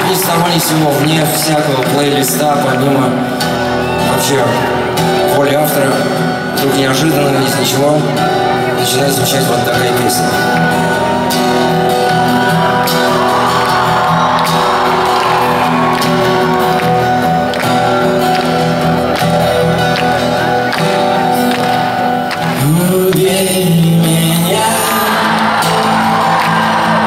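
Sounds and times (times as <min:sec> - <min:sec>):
strummed acoustic guitar: 0:00.0 - 0:27.0
person singing: 0:22.3 - 0:27.0.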